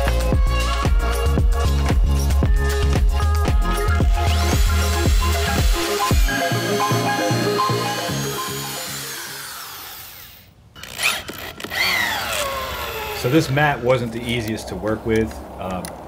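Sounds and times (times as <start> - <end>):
dance music with steady beat: 0.0 - 7.8
electric drill drilling: 4.0 - 13.6.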